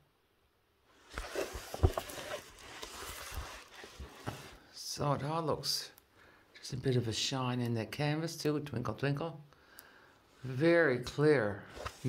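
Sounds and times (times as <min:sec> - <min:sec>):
plastic rustling: 0:01.0 - 0:04.6.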